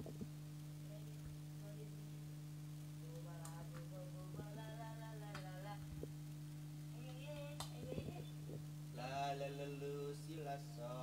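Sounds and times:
low electrical hum: 0:00.0 - 0:11.0
faint singing with music: 0:06.9 - 0:11.0.

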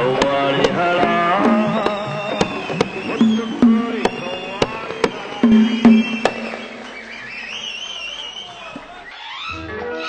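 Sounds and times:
tabla strikes: 0:00.0 - 0:07.2
high melody tones: 0:05.4 - 0:07.2.

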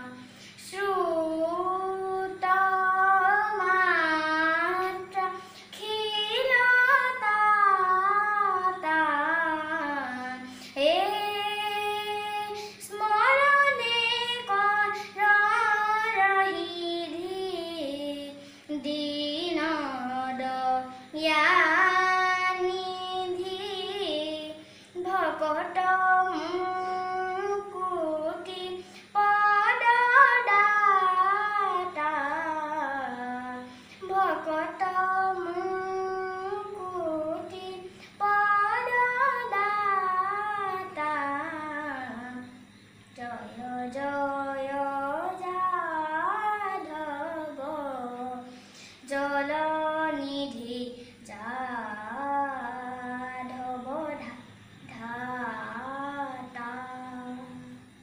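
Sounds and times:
boy singing unaccompanied: 0:00.0 - 0:58.0.

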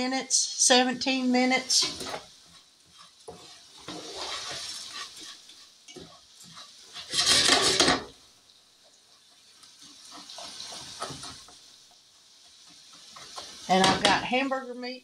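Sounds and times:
spoon scraping dry rice in skillet: 0:01.0 - 0:08.2, 0:09.1 - 0:14.2.

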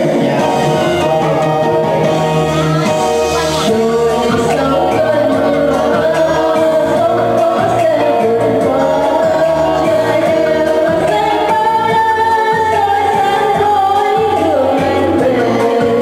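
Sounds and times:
amplified backing music: 0:00.0 - 0:16.0
woman singing into microphone: 0:00.0 - 0:16.0.

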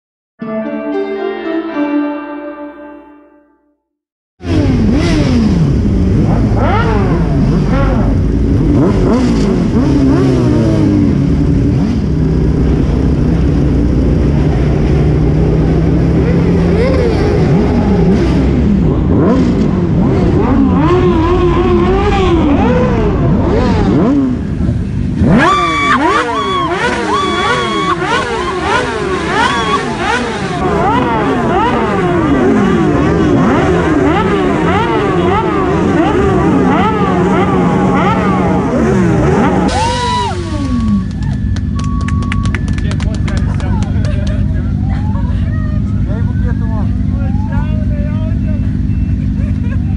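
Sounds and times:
motorcycle engines revving: 0:04.4 - 0:49.9.

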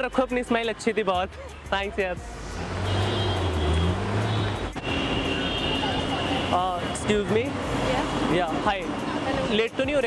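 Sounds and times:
vehicle engine rumbling and revving: 0:00.0 - 0:10.0.

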